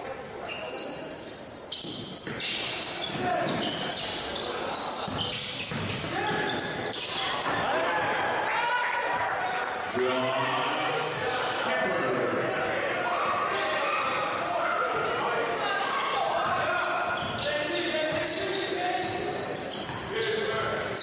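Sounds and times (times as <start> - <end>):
crowd voices in gymnasium: 0.0 - 21.0.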